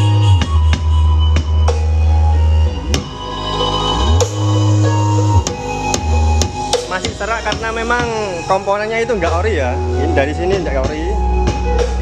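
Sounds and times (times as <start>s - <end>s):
deep bass notes: 0.0s - 12.0s.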